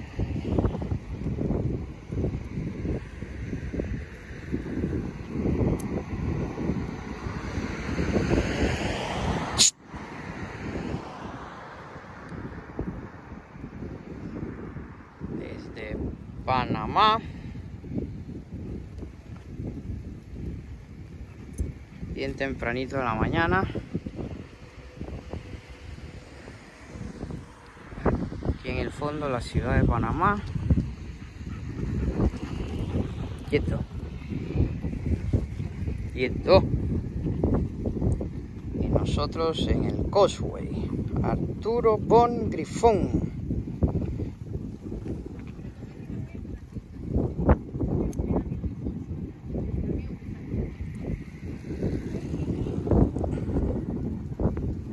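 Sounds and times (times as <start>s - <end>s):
wind buffeting microphone: 0.0s - 54.9s.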